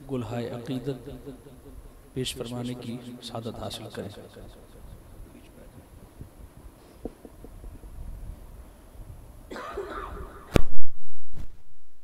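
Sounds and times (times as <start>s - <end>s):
person coughing into microphone: 9.5s - 10.5s.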